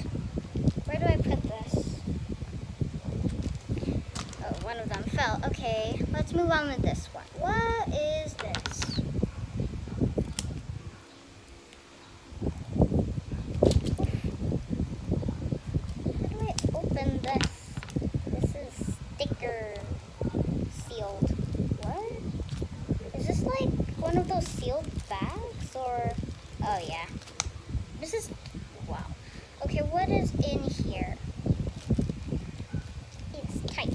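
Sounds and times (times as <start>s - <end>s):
plastic crinkling: 3.2s - 5.2s, 8.2s - 9.0s, 13.5s - 14.2s, 24.0s - 27.6s, 31.6s - 33.9s
plastic packet rustling: 3.2s - 5.2s, 8.2s - 9.0s, 24.0s - 27.5s, 31.6s - 33.9s.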